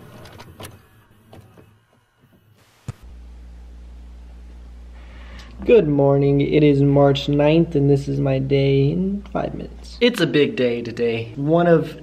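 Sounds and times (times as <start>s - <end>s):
steady low hum: 2.6s - 12.0s.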